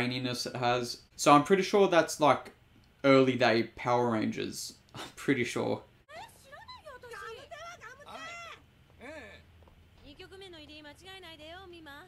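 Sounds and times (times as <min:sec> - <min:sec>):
woman speaking: 0:06.1 - 0:09.4, 0:10.0 - 0:12.0.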